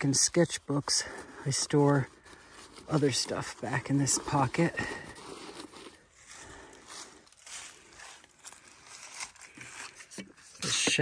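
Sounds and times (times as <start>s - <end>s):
paper towel rustling: 0.0s - 6.7s
light taps and scrapes: 9.4s - 11.0s.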